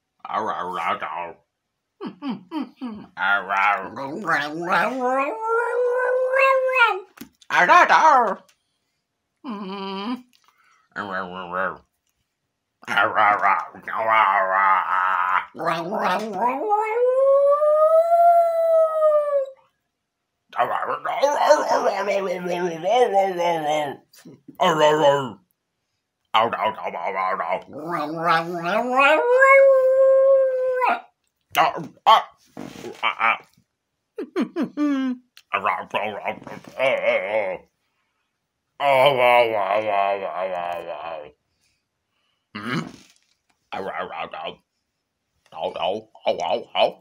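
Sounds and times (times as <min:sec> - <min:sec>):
man howling: 0:03.8 - 0:07.1, 0:13.0 - 0:19.6, 0:20.6 - 0:25.4, 0:27.0 - 0:31.0
small dog howling: 0:04.2 - 0:07.1, 0:14.8 - 0:19.6, 0:27.8 - 0:31.0
low human voice: 0:09.4 - 0:10.2, 0:12.8 - 0:19.5, 0:20.6 - 0:25.4, 0:26.4 - 0:31.0, 0:32.8 - 0:33.5, 0:34.2 - 0:37.7, 0:38.8 - 0:41.4, 0:42.6 - 0:43.0.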